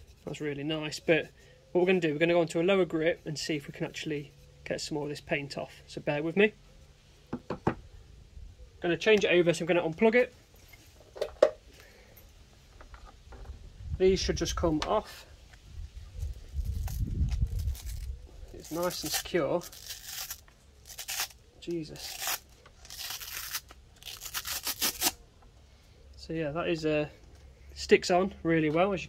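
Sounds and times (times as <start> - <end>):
sanding disc ripping off: 16.8 - 21.4, 22.0 - 25.2.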